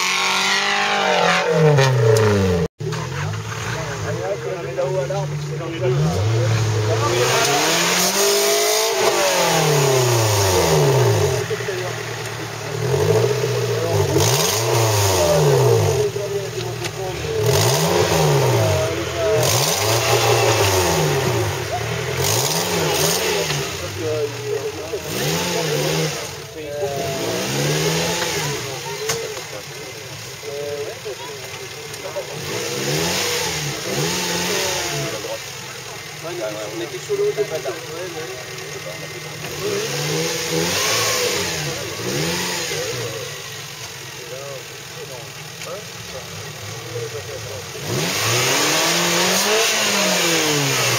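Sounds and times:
off-road engine revving hard: 0.0 - 50.9.

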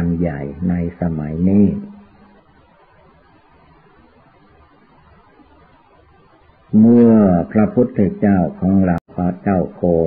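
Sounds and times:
man speaking loudly: 0.0 - 2.0, 6.8 - 10.0
faint background hiss: 0.0 - 10.0.

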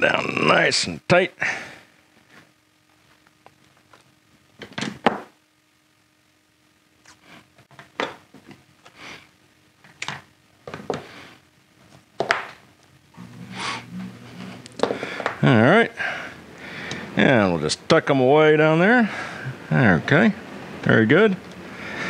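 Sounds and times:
faint steady hum: 0.0 - 22.0.

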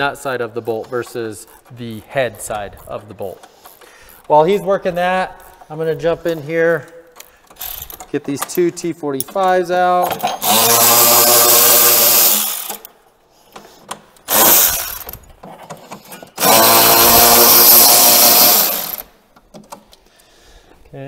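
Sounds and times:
electric ratchet motor whirring: 7.6 - 8.0, 10.4 - 12.9, 14.3 - 15.2, 16.4 - 19.1.

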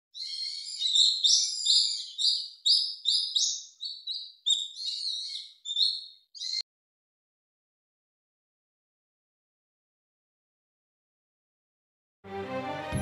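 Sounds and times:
songbird chirping rapidly: 0.1 - 6.6.

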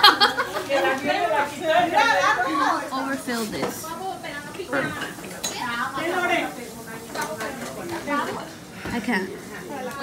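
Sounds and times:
people talking: 0.0 - 10.0.

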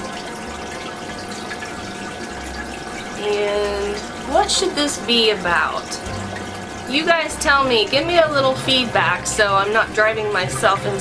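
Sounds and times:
aquarium water trickling: 0.0 - 11.0.

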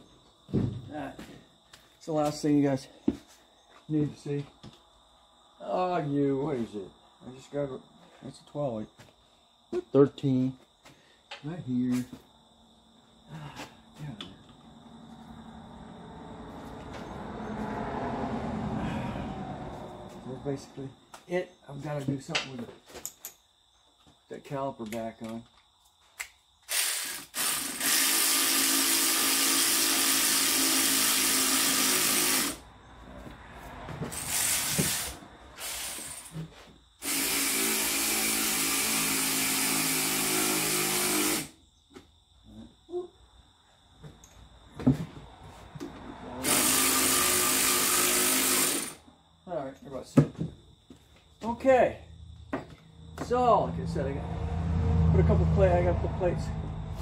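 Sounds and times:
hand tools clicking and knocking: 22.3 - 23.4
power drill running: 26.7 - 32.6, 37.0 - 41.6, 46.4 - 49.0.

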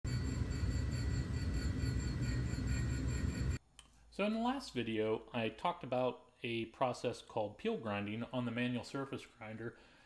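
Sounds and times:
surface grinder rumbling and whining: 0.1 - 3.6.

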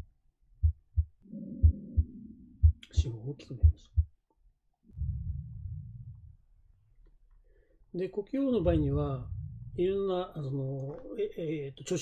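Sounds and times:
heartbeat thumps: 0.6 - 4.2, 5.0 - 6.4, 8.6 - 10.1
soft breath sound: 4.9 - 6.6, 7.3 - 7.9.

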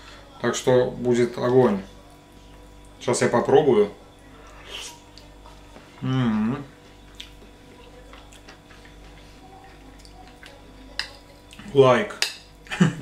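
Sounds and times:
man humming mmm: 6.0 - 6.7.

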